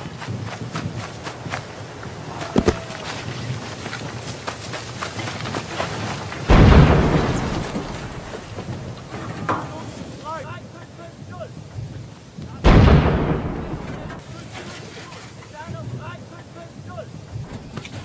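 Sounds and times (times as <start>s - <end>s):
artillery gun booms: 6.4s - 10.0s, 12.6s - 14.2s.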